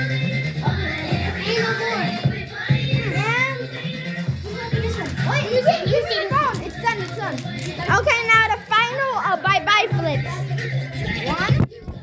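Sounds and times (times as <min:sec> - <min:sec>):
music playing: 0:00.0 - 0:12.0
children shouting and chattering: 0:00.6 - 0:12.0.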